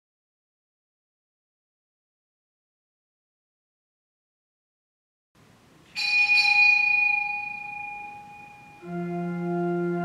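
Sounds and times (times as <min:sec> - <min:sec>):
small bell ringing: 0:06.0 - 0:08.8.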